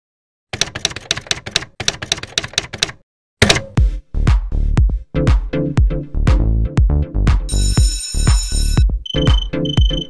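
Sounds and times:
rapid keyboard typing clicks: 0.6s - 3.6s
electronic music with heavy bass: 3.8s - 10.0s.

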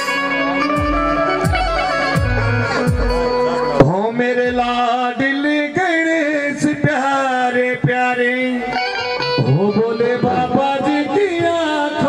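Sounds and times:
harmonium and keyboard melody: 0.0s - 12.0s
hand drums: 0.8s - 3.4s.

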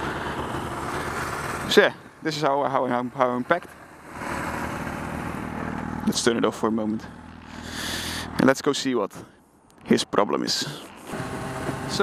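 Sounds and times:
motorcycle engine running: 0.0s - 8.4s, 11.0s - 12.0s.

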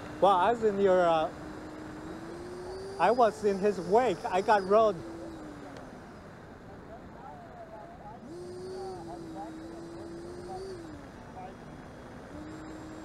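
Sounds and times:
distant rc jet whine: 0.0s - 13.0s
faint steady noise: 0.0s - 13.0s.

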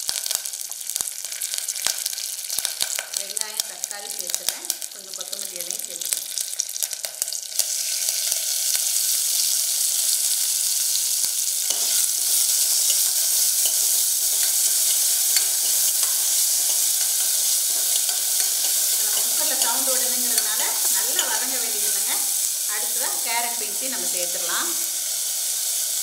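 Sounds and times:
food sizzling in hot oil: 0.0s - 26.0s
ladle clicking and scraping pan: 11.7s - 21.4s.

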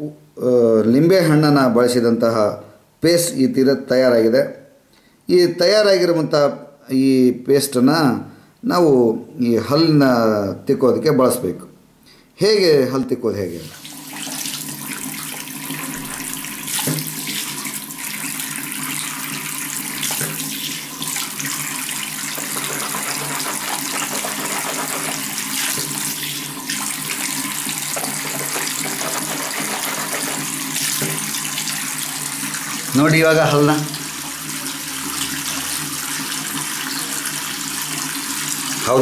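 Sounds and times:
water running from a tap: 13.6s - 39.0s.

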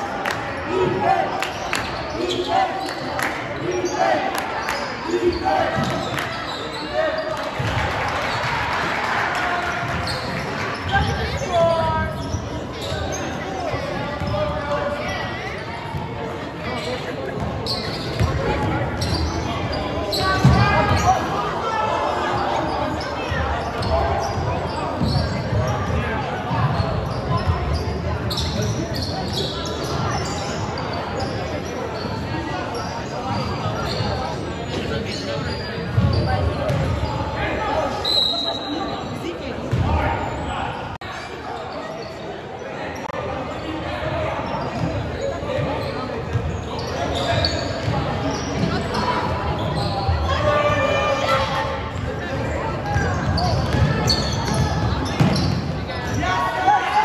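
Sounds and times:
echoing voices: 0.0s - 57.0s.

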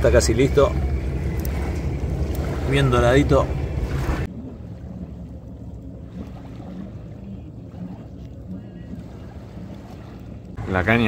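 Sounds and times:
low wind rumble: 0.0s - 11.0s.

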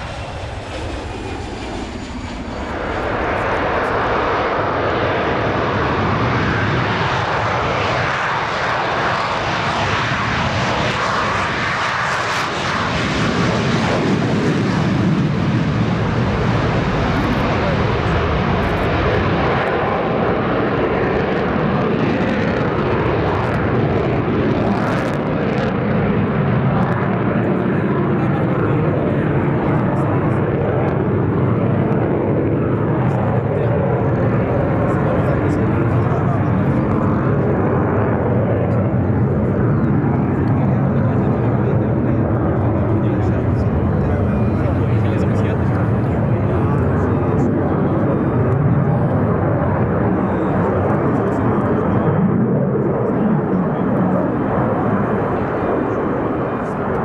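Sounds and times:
jet engine roar: 0.0s - 57.0s.

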